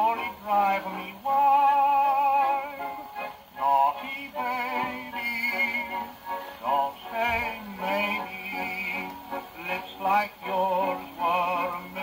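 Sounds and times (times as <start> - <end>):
dance band on old record: 0.0 - 12.0
man singing with vibrato: 0.0 - 12.0.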